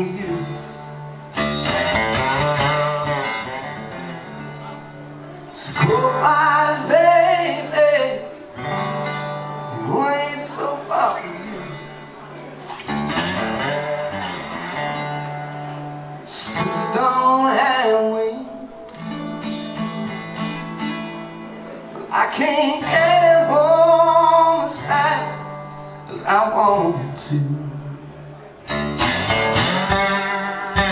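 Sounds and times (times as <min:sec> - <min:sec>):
man singing blues: 0:00.0 - 0:04.5, 0:05.5 - 0:12.2, 0:12.8 - 0:15.6, 0:16.2 - 0:21.0, 0:22.0 - 0:30.9
resonator guitar playing: 0:00.0 - 0:30.9.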